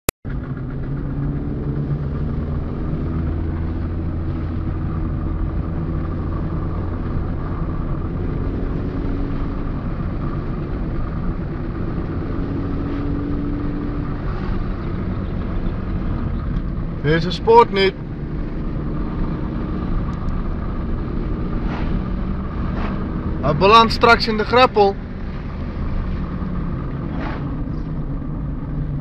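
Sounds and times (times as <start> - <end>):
car engine and road noise: 0.2 - 29.0.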